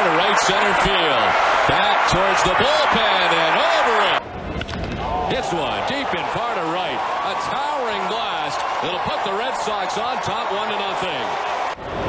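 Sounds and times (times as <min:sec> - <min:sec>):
man announcing: 0:00.0 - 0:04.2, 0:05.3 - 0:11.4
stadium crowd noise: 0:00.0 - 0:12.0.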